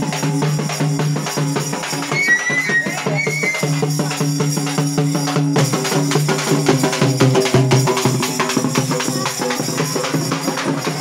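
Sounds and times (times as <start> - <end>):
frame drums beaten fast: 0.0 - 11.0.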